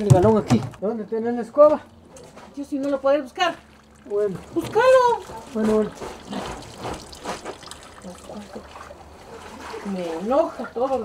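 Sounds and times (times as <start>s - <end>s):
water splashing and trickling: 2.6s - 11.0s
wet fabric scrubbed by hand: 4.4s - 11.0s.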